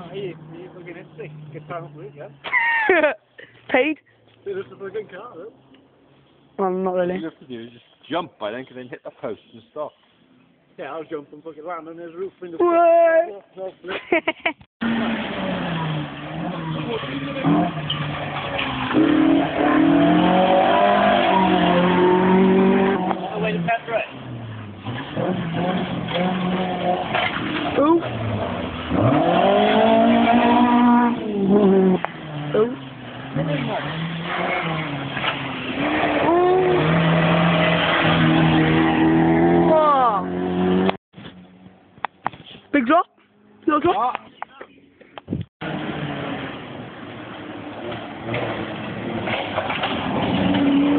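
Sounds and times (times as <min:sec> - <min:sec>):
rally car engine revving: 0:14.8 - 0:41.0, 0:45.6 - 0:50.9.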